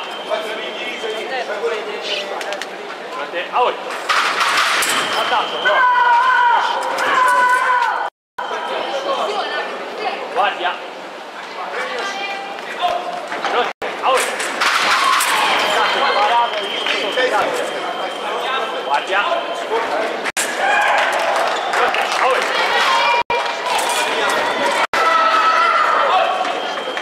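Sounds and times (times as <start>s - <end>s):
chatter of voices in hall: 0.0s - 3.9s, 5.3s - 14.2s, 14.9s - 20.3s.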